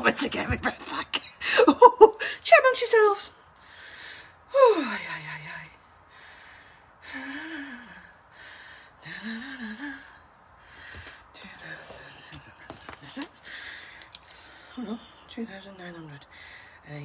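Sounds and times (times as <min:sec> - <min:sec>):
woman breathing hard: 0:03.6 - 0:05.0, 0:05.8 - 0:11.3, 0:13.4 - 0:14.8
light clicks and taps: 0:14.0 - 0:14.6.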